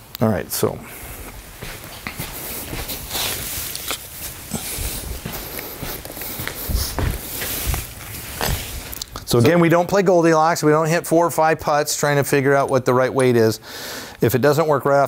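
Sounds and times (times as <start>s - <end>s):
footsteps on artificial turf: 1.0s - 9.0s
clothing rustle: 1.1s - 9.1s
soft low thuds: 4.5s - 8.9s.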